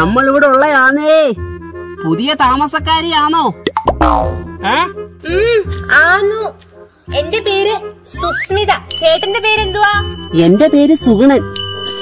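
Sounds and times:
light background music: 0.0 - 12.0
cartoon boing sound effect: 3.7 - 4.5.

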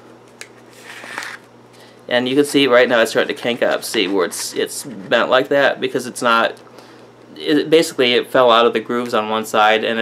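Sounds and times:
film rustling and scraping: 0.6 - 1.5, 2.4 - 5.2.

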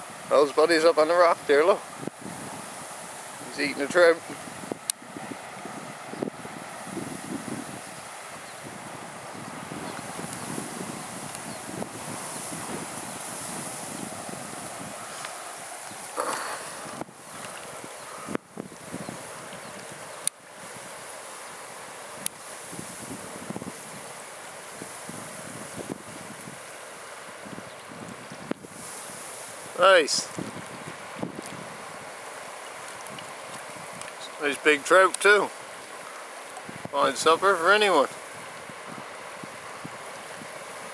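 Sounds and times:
wind buffeting microphone: 0.0 - 21.2, 22.0 - 36.0, 36.6 - 40.9.

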